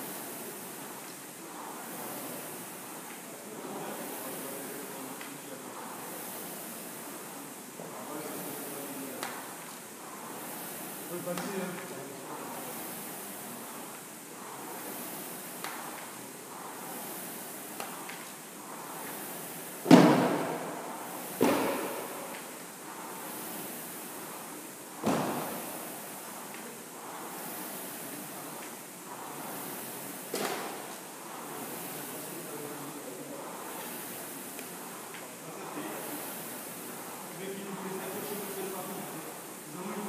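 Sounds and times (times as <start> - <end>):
rowing machine flywheel whoosh: 0.0 - 40.0.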